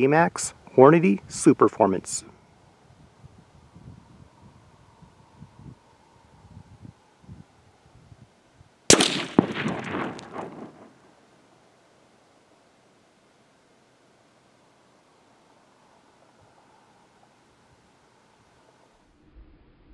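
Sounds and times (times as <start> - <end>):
rumbling echo: 8.9 - 11.0
rifle shot crack: 8.9 - 11.2.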